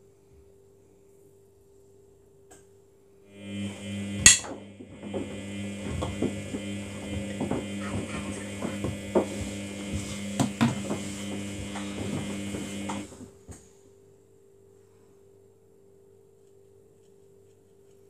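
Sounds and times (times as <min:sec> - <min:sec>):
washing machine motor hum: 0:03.3 - 0:13.6.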